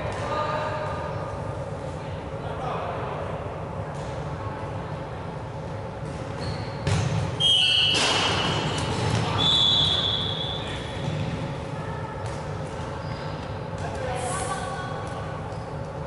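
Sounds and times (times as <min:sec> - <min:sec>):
shoe squeaks on wooden court: 0:06.4 - 0:08.8
ball impacts: 0:06.8 - 0:09.4.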